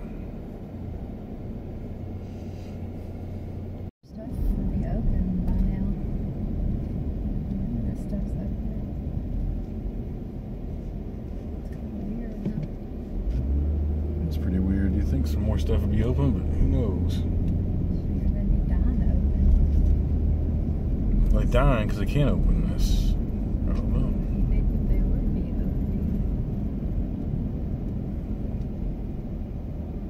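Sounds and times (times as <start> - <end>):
car road and engine rumble: 0.0 - 30.0.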